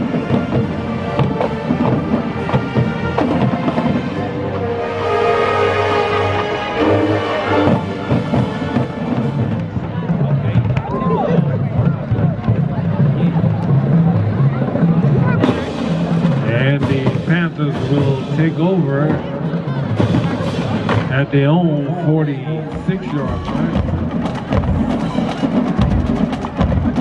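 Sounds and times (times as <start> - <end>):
brass chord: 0.0 - 9.6
marching drums beating: 0.0 - 21.5, 22.6 - 27.0.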